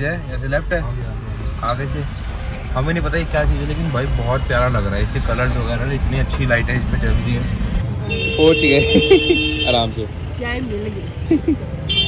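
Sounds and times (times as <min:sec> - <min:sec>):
road rumble: 0:00.0 - 0:12.0.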